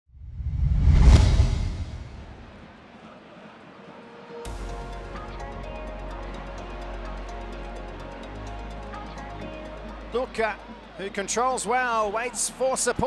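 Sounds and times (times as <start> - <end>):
deep bass whoosh: 0.2 - 2.7
electronic theme music: 4.1 - 12.9.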